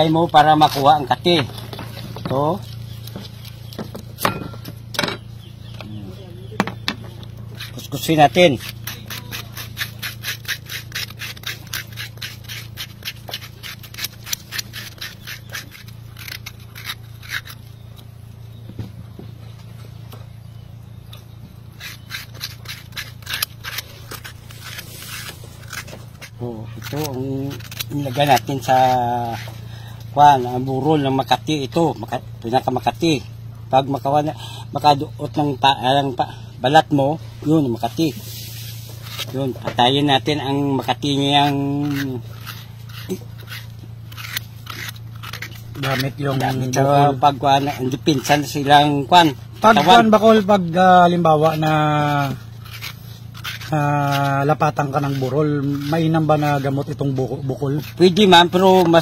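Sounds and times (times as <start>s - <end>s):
coconut scraper rasping: 0.0s - 4.8s, 5.7s - 18.1s, 21.1s - 59.0s
low steady hum: 0.0s - 59.0s.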